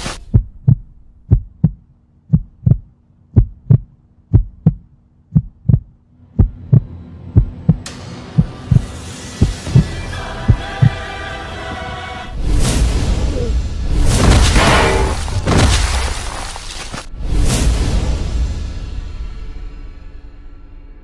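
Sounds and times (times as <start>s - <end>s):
heartbeat thumping: 0.2s - 9.9s, 10.5s - 11.0s.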